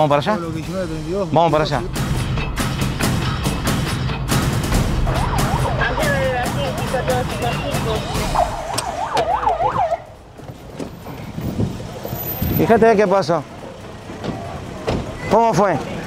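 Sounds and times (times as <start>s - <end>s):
police siren yelping: 5.0s - 10.2s.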